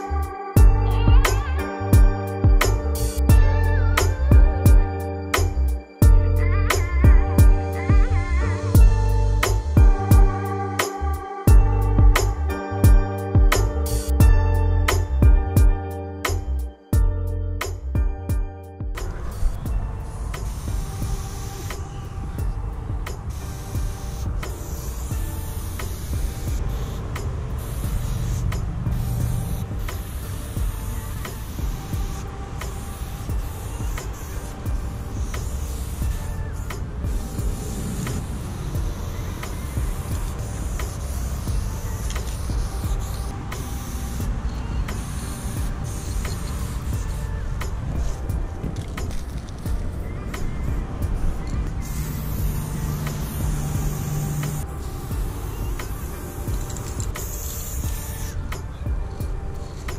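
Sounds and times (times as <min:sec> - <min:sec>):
spray paint can hissing: 0:00.0 - 0:04.7, 0:05.4 - 0:15.2, 0:19.0 - 0:59.9.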